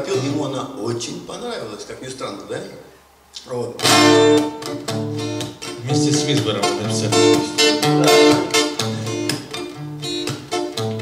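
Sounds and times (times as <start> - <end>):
acoustic guitar strumming: 3.8 - 11.0.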